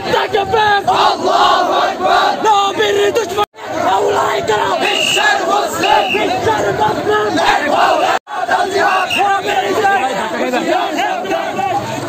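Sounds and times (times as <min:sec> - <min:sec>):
crowd of men shouting slogans: 0:00.0 - 0:12.0.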